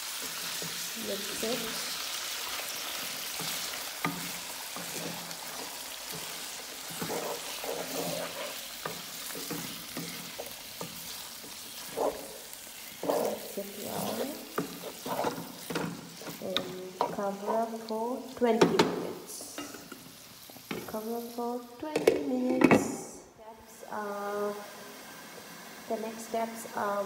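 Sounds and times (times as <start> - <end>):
meat sizzling in hot oil: 0.0 - 18.4, 19.6 - 21.3
wooden spatula scraping a pan: 0.1 - 17.9.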